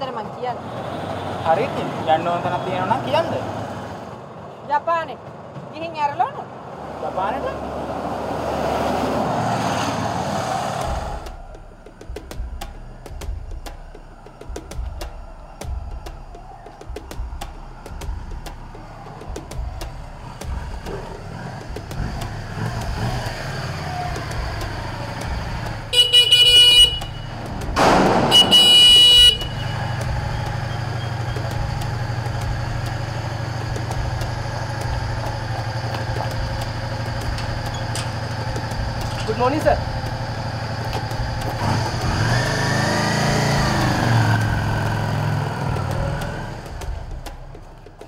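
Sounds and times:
motorcycle horn blasts: 0:25.9 - 0:27.4, 0:28.3 - 0:30.0
motorcycle engine idling: 0:28.6 - 0:42.6.

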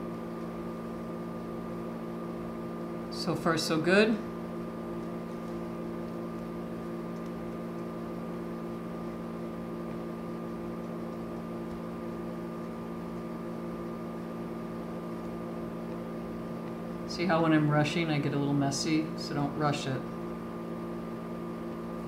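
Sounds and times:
machine hum: 0:00.0 - 0:22.0.

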